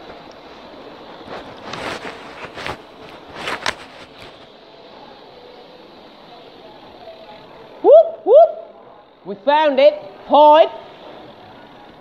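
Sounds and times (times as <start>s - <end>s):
faint outdoor background noise: 0.0s - 12.0s.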